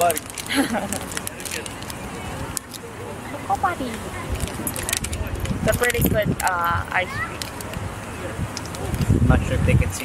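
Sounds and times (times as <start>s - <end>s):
plastic wrapper crinkling: 0.0s - 2.0s.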